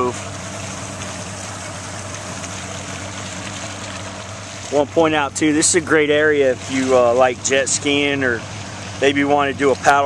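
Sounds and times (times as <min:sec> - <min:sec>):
motorboat engine drone: 0:00.0 - 0:10.0
water and wind hiss: 0:00.0 - 0:10.0.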